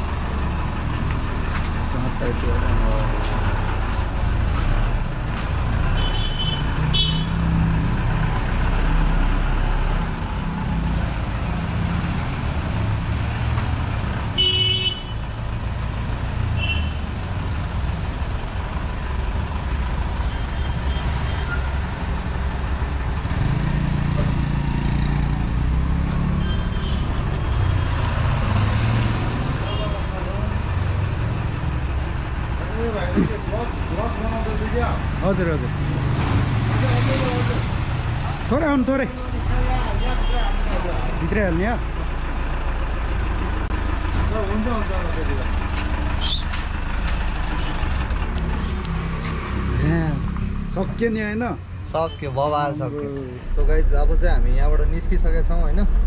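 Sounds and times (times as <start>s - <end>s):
vehicle engine and road rumble: 0.0s - 56.0s
car horn toots: 14.3s - 15.2s.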